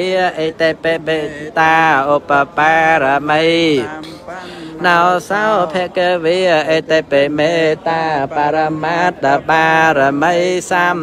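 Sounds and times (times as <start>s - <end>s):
person singing a chant: 0.0s - 11.0s.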